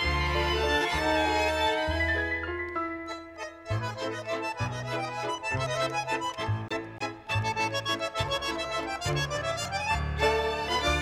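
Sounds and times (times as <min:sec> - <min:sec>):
bandoneon: 0:00.0 - 0:11.0
bass waltz beat: 0:00.0 - 0:11.0
violins: 0:00.0 - 0:11.0.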